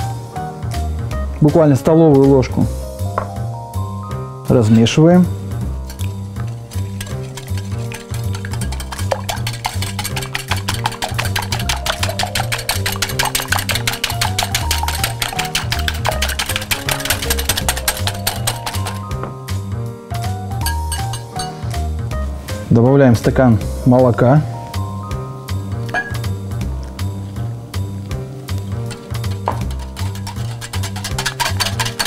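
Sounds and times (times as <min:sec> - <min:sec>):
background music with bass line: 0:00.0 - 0:32.0
whisk clinking against glass bowl: 0:05.9 - 0:19.2, 0:20.6 - 0:21.6, 0:28.9 - 0:32.0.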